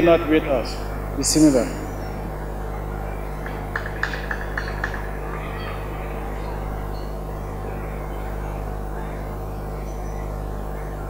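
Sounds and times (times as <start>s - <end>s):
mains hum: 0.0s - 11.0s.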